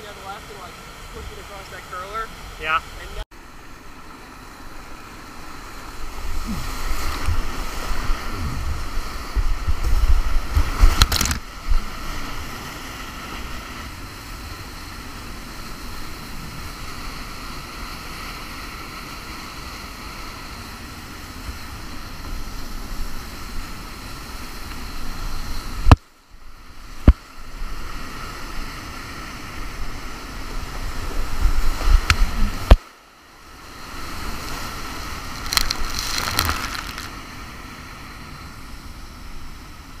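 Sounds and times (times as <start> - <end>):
water splashing on lens: 6.1 - 11.9, 35.2 - 37.2
whitewater rapids rushing: 34.0 - 37.4.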